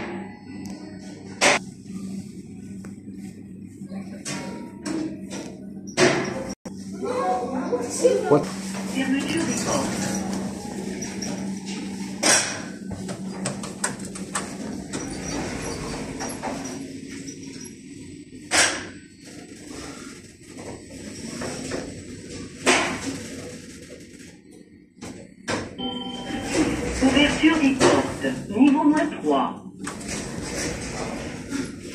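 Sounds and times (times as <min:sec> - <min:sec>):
lift car humming: 0:04.6 - 0:18.5, 0:25.8 - 0:31.9
lift arrival chime: 0:25.8 - 0:27.5.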